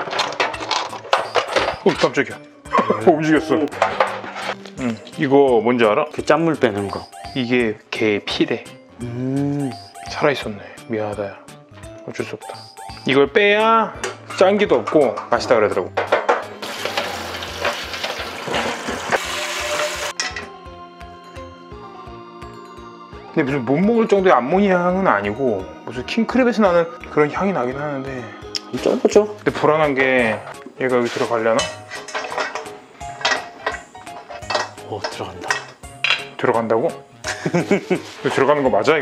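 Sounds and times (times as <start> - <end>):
crab shell clanking on metal pot: 16.0 - 18.7, 31.6 - 36.3.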